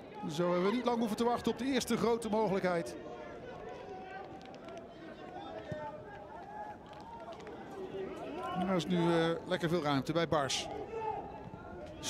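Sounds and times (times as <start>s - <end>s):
distant shouts and calls: 10.6s - 12.0s.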